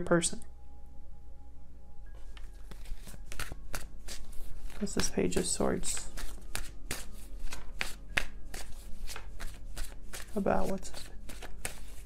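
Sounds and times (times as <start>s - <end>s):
cards being shuffled: 2.2s - 12.0s.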